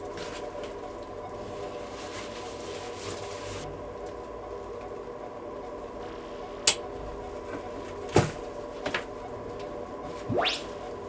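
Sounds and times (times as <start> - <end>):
electronic drone: 10.1 - 11.0.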